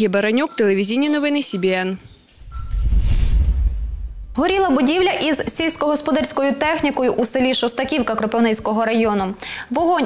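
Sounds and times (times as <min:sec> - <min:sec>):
low rumbling whoosh: 0:02.4 - 0:04.9.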